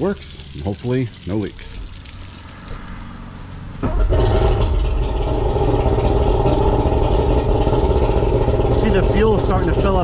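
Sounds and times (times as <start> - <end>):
outboard engine starting and running: 2.2 - 10.0.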